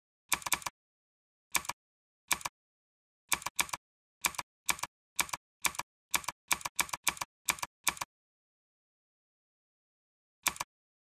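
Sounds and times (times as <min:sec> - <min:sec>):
computer keyboard typing: 0:00.3 - 0:00.7, 0:01.6 - 0:02.5, 0:03.3 - 0:08.1, 0:10.4 - 0:10.7.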